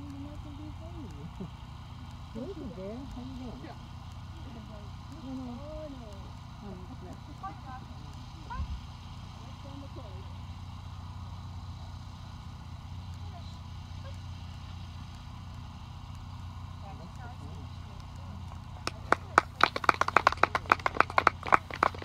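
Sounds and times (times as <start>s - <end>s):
low outdoor hum: 0.0s - 22.0s.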